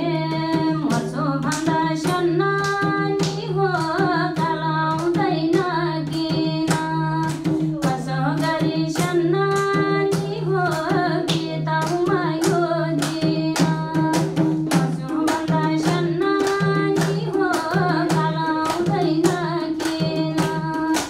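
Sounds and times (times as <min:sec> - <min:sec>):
woman singing: 0:00.0 - 0:21.0
drum strokes: 0:06.1 - 0:20.6.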